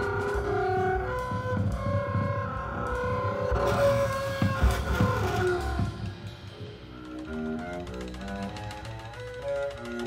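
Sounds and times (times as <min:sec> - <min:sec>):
jazz ensemble playing: 0:00.0 - 0:10.0.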